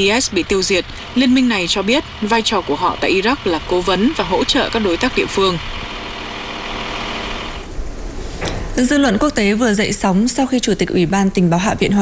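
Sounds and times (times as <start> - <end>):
diesel engine idling: 0.0 - 7.7.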